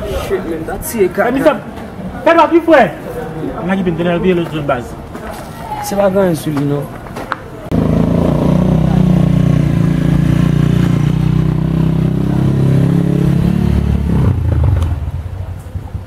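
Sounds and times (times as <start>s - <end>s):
motorcycle engine running: 7.7s - 16.0s.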